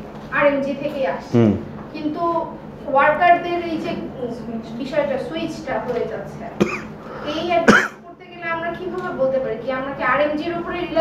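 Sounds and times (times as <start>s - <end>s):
people talking: 0.4s - 6.6s, 7.3s - 11.0s
person coughing: 6.6s - 7.0s, 7.6s - 8.0s.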